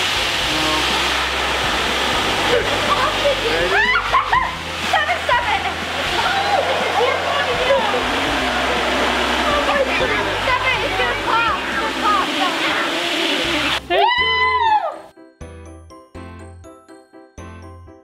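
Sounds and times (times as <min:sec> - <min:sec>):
electric balloon blower running: 0:00.0 - 0:04.0, 0:05.4 - 0:13.8.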